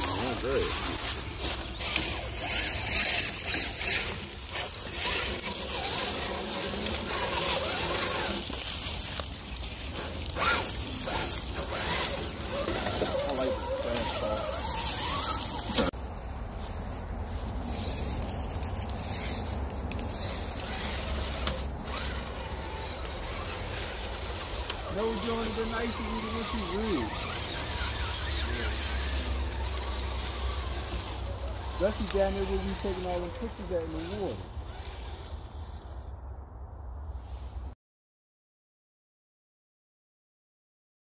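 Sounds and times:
rustling leaves: 0.0 - 37.8
electric motor whine: 19.1 - 35.4.

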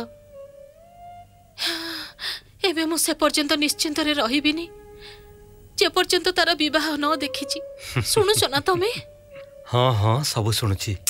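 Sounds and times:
soft background music: 0.0 - 11.0
person speaking: 7.8 - 11.0.

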